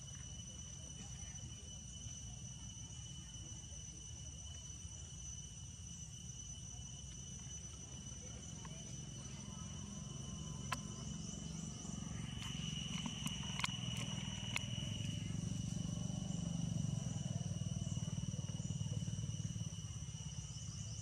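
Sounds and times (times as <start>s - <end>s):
high-pitched insect drone: 0.0s - 21.0s
sharp clicks: 12.3s - 15.2s.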